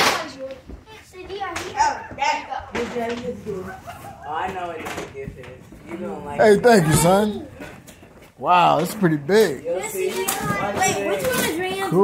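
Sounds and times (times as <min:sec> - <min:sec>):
children talking and calling out: 0:00.0 - 0:08.4, 0:09.6 - 0:12.0.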